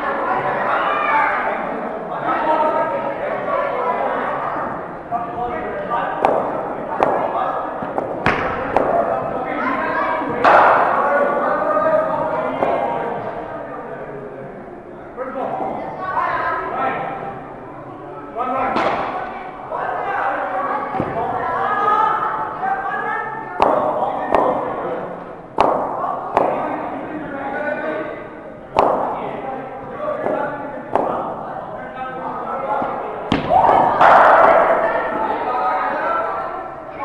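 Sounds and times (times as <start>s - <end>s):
people chattering: 0.0s - 37.0s.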